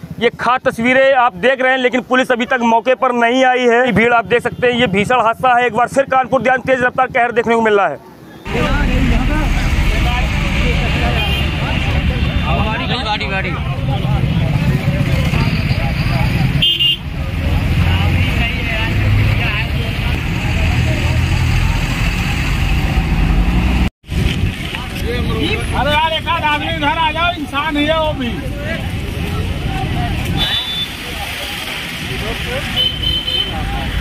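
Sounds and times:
highway traffic rumble: 0:00.0 - 0:34.0
people talking: 0:00.2 - 0:22.7, 0:24.7 - 0:34.0
vehicle horn: 0:11.0 - 0:12.6, 0:16.6 - 0:17.1, 0:32.7 - 0:33.7.

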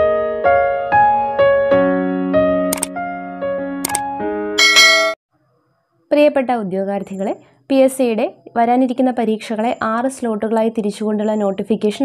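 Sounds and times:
electric piano melody: 0:00.0 - 0:04.6
double click sound effects: 0:02.7 - 0:02.9, 0:03.8 - 0:04.0.

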